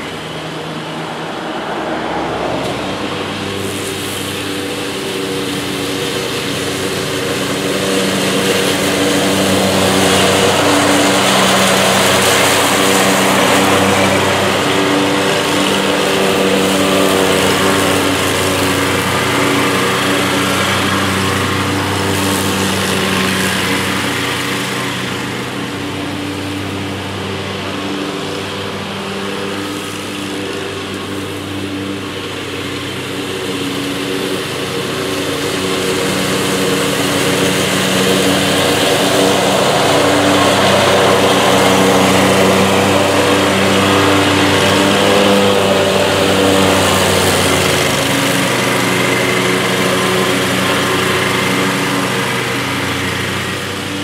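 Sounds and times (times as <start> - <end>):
riding mower engine running: 0.0 - 54.0
whir of mower blades: 0.0 - 54.0.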